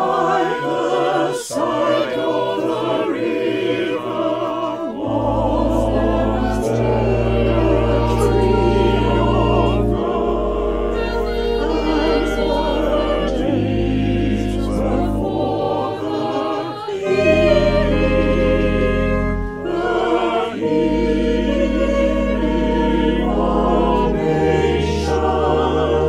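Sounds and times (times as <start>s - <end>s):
choir singing sacred piece: 0.0s - 26.0s
long held low notes: 4.5s - 26.0s.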